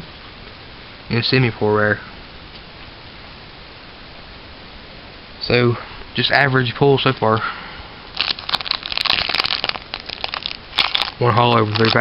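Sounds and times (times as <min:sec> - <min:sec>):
foil wrapper crinkling: 0:08.1 - 0:12.0.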